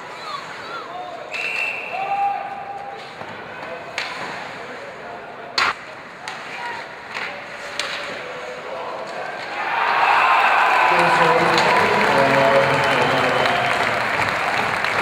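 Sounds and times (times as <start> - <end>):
crowd noise: 0.0 - 15.0
short high whistle: 1.3 - 2.7
hockey sticks and puck clacking: 2.8 - 4.8, 5.5 - 9.7.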